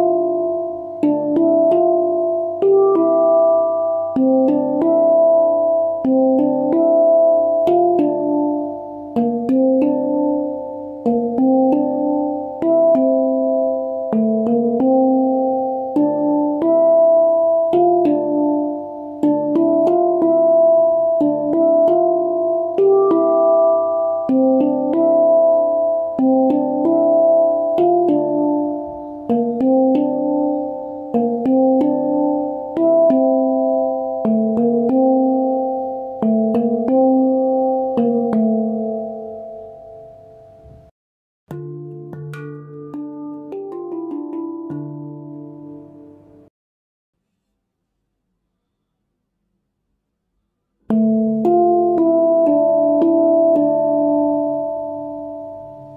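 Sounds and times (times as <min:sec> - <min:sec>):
handpan notes ringing: 0:00.0 - 0:40.9, 0:41.5 - 0:46.5, 0:50.9 - 0:55.9.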